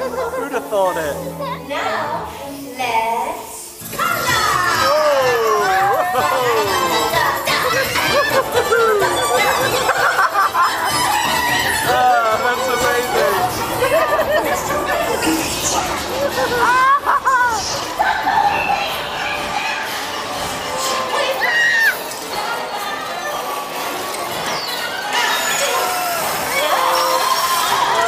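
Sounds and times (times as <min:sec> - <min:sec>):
music: 0:00.0 - 0:25.0
busy background noise: 0:00.0 - 0:28.0
warbling cartoon sound effects: 0:03.9 - 0:19.9.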